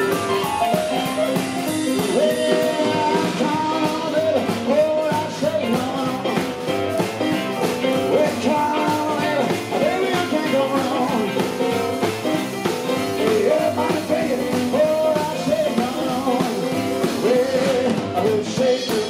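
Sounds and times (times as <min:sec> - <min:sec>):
piano: 0:00.0 - 0:19.0
rock and roll band playing: 0:00.0 - 0:19.0
upright double bass: 0:00.0 - 0:19.0.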